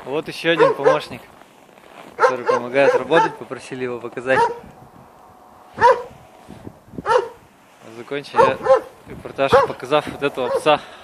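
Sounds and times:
dog barking: 0:00.5 - 0:01.2, 0:02.2 - 0:03.4, 0:04.3 - 0:04.7, 0:05.8 - 0:06.2, 0:07.0 - 0:07.4, 0:08.3 - 0:09.8, 0:10.4 - 0:10.8.

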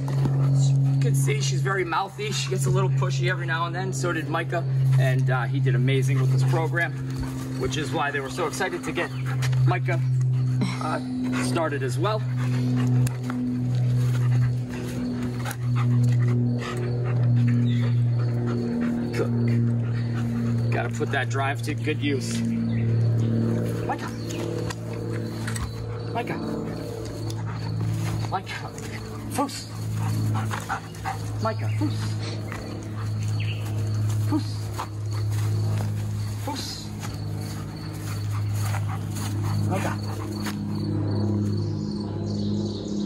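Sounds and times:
dog playing excitedly: 0:00.0 - 0:03.4, 0:04.6 - 0:41.6
loud low hum: 0:00.0 - 0:43.0
footsteps on grass: 0:10.4 - 0:41.6.

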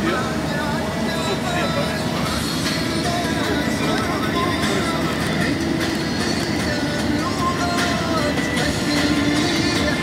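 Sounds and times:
faint voices: 0:00.0 - 0:08.3
road and engine rumble in vehicle: 0:00.0 - 0:10.0.

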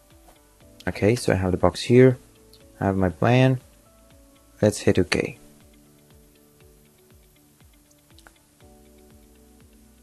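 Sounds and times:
soft held chords: 0:00.0 - 0:10.0.

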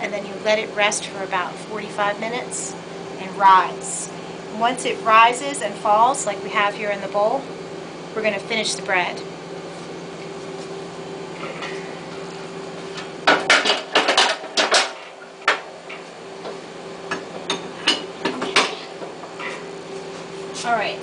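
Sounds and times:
steady kitchen hum: 0:00.0 - 0:21.0.

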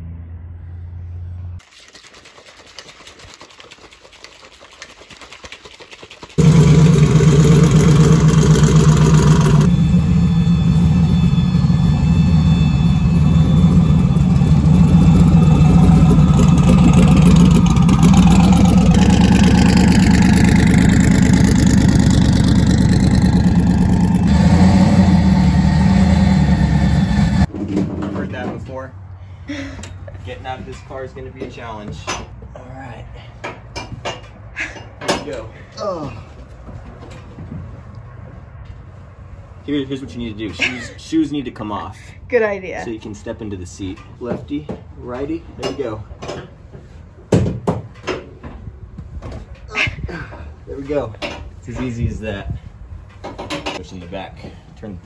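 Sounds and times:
drag car engine running: 0:06.4 - 0:27.5.

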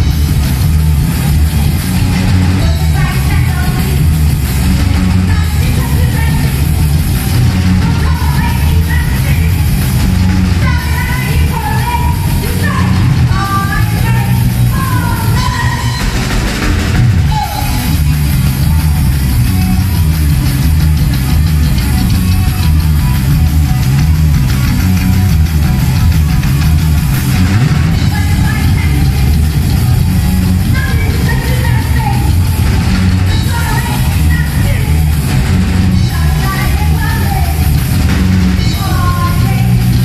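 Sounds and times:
punk rock band playing: 0:00.0 - 0:40.0
woman shouting vocals: 0:10.6 - 0:16.1, 0:17.3 - 0:17.8, 0:30.7 - 0:32.4.

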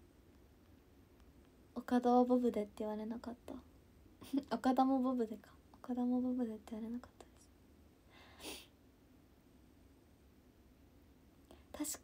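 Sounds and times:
woman speaking: 0:01.8 - 0:07.4, 0:11.7 - 0:12.0.

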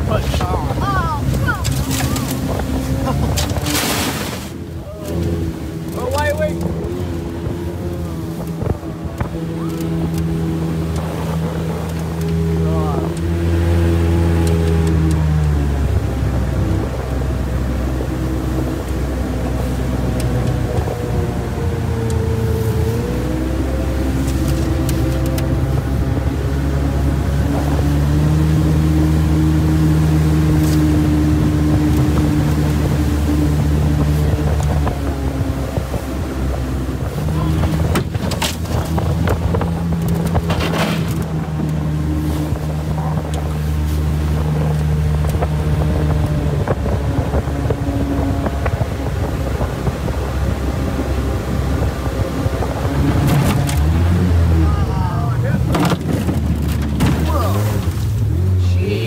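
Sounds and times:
outboard boat motor running: 0:00.0 - 0:59.0.

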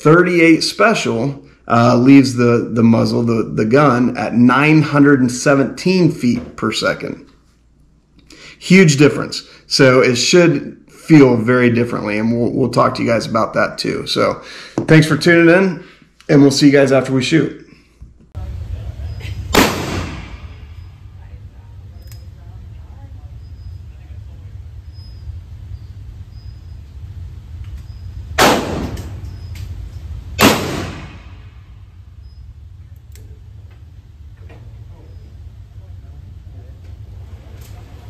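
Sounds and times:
steady low hum: 0:00.0 - 0:38.0
revolver shots with ringing echo: 0:19.5 - 0:20.9, 0:28.4 - 0:29.5, 0:30.4 - 0:31.8.

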